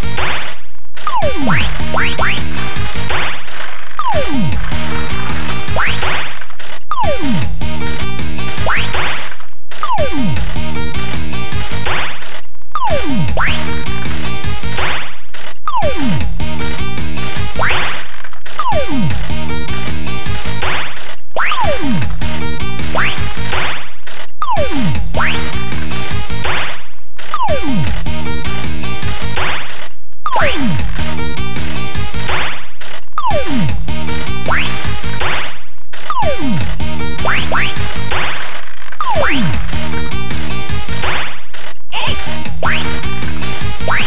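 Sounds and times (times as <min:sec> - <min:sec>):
looping electronic game music: 0:00.0 - 0:44.0
cartoon sound effect: 0:01.0 - 0:02.5, 0:04.0 - 0:04.5, 0:06.9 - 0:07.4, 0:09.8 - 0:10.3, 0:12.8 - 0:13.7, 0:15.7 - 0:16.2, 0:17.6 - 0:18.0, 0:18.6 - 0:19.1, 0:21.4 - 0:22.0, 0:24.4 - 0:25.5, 0:27.3 - 0:27.8, 0:30.3 - 0:30.8, 0:33.2 - 0:33.7, 0:36.1 - 0:36.6, 0:37.2 - 0:37.8, 0:39.0 - 0:39.6, 0:41.9 - 0:42.9
pachinko machine music: 0:01.1 - 0:03.2, 0:04.0 - 0:06.2, 0:36.1 - 0:38.0, 0:42.1 - 0:44.0.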